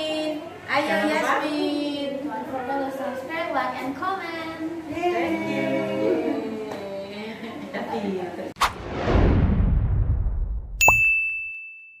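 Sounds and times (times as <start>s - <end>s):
low rumble: 8.6s - 10.8s
bright bell ding: 10.8s - 12.0s.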